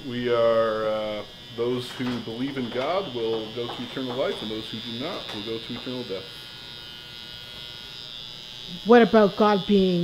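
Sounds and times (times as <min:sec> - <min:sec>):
electric hair clippers buzzing: 0:00.0 - 0:10.0.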